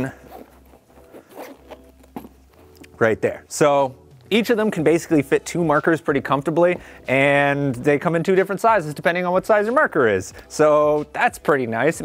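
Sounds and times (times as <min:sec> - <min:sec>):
zipper being pulled open: 0:00.0 - 0:02.9.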